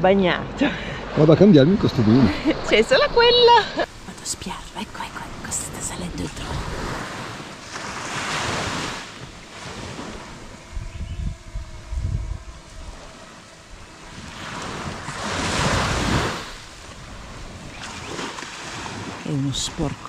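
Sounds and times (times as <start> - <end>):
wind buffeting microphone: 0.0 - 20.0
waves washing on beach: 2.0 - 10.7, 12.6 - 20.0.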